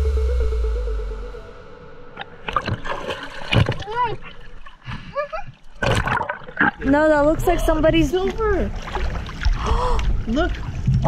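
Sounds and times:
water splashing and sloshing: 0:02.2 - 0:11.0.

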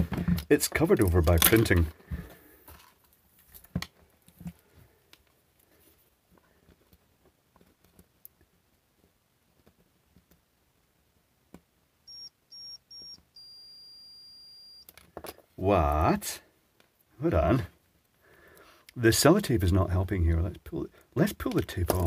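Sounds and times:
multimeter beeping: 0:12.1 - 0:14.9.

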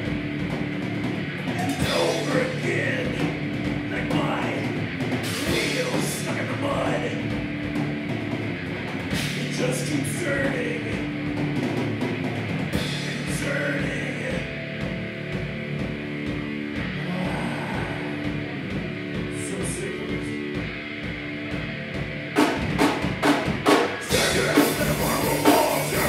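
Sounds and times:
heavy metal band playing: 0:00.0 - 0:26.0
drum hits and cymbal crashes: 0:22.4 - 0:26.0.

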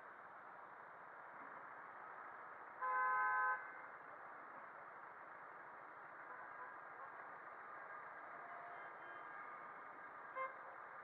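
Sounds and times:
road noise: 0:00.0 - 0:11.0
vehicle horn beep: 0:10.4 - 0:10.6.

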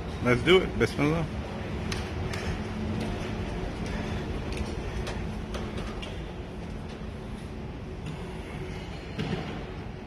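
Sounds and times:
low even hum: 0:00.0 - 0:10.0.

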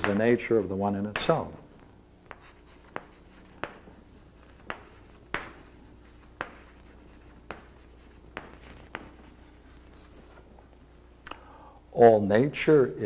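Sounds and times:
chalk scratching: 0:00.0 - 0:01.6, 0:02.3 - 0:10.4
chalk tapping on blackboard: 0:00.0 - 0:01.6, 0:02.2 - 0:10.4.

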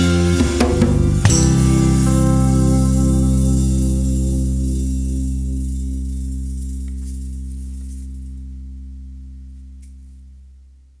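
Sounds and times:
cymbal wash: 0:00.0 - 0:08.7
guitar chord ringing out: 0:00.0 - 0:10.1.

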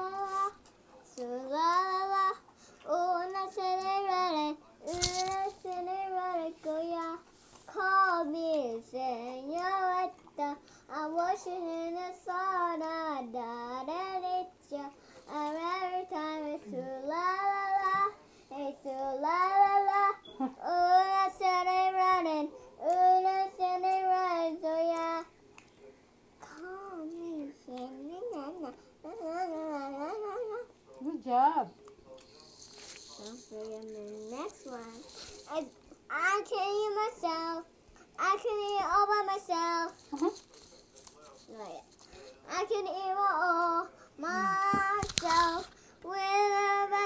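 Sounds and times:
girl singing unaccompanied: 0:00.0 - 0:25.3, 0:26.4 - 0:30.8, 0:33.1 - 0:40.4, 0:41.5 - 0:47.0.

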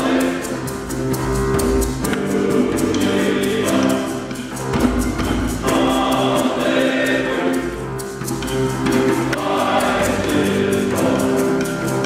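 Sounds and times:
men's choir singing: 0:00.0 - 0:01.1, 0:01.9 - 0:12.0
gourd shakers: 0:00.0 - 0:12.0
hand drum: 0:00.0 - 0:12.0.

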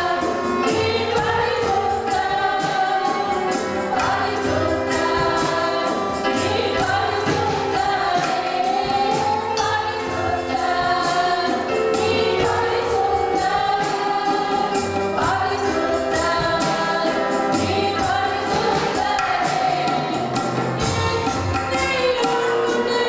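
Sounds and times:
violin: 0:00.0 - 0:23.0
woman singing into microphone: 0:20.9 - 0:23.0.

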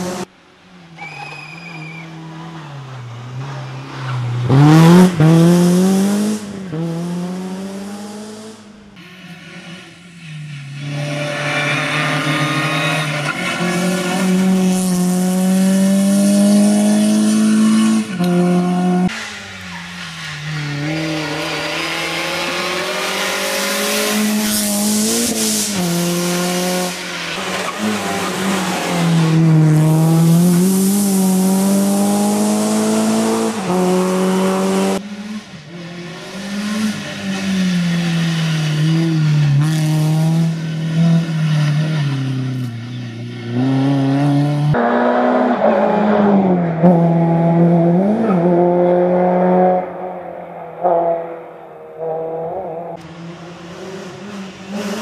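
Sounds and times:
rally car engine revving: 0:02.2 - 0:55.0.

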